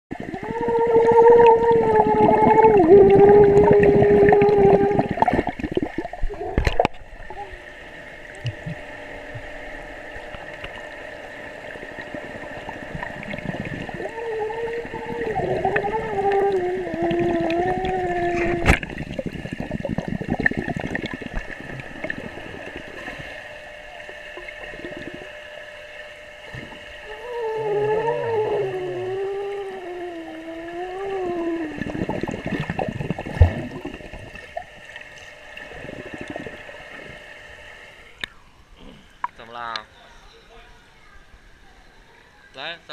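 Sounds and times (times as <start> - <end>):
underwater churning and gurgling: 0.1 - 39.6
steady high hum: 0.1 - 42.9
wavering pitched tone: 27.0 - 34.5.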